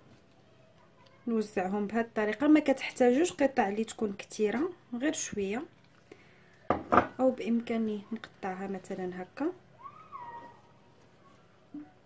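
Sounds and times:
high-pitched animal call: 9.8s - 10.7s.

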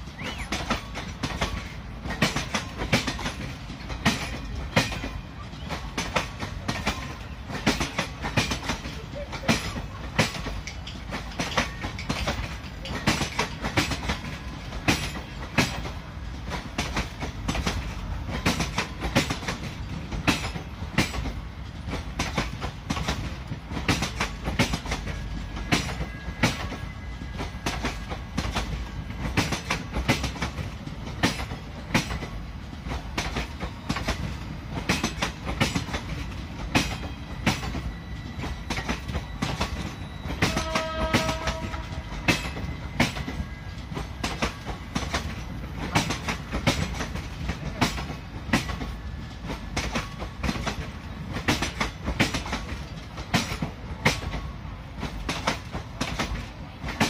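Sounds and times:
low train rumble: 0.0s - 57.0s
train wheels clicking over rail joints: 0.0s - 57.0s.

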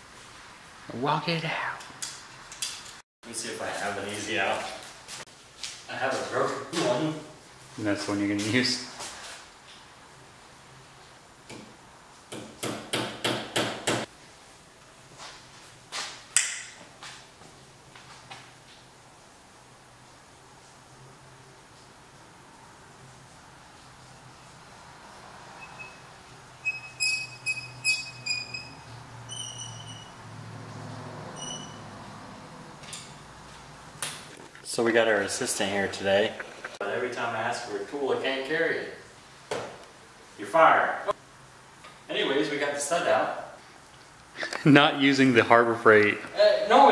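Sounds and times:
metal stud squeaking in threads: 25.6s - 30.2s, 31.4s - 31.9s.

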